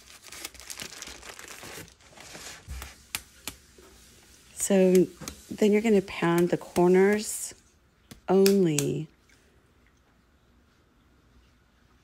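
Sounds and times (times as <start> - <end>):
plastic bag crinkling: 0.0 - 3.0.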